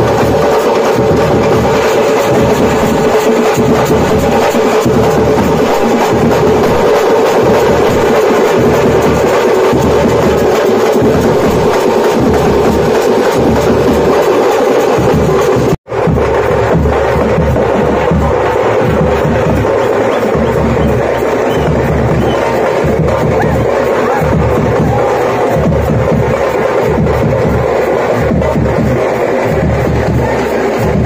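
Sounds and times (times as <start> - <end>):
drums beaten with sticks: 0.0 - 31.0.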